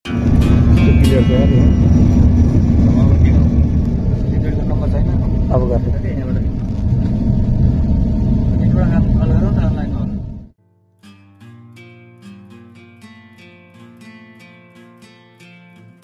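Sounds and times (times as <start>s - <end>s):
airliner cabin rumble: 0.0s - 10.5s
passengers' voices: 0.9s - 6.8s.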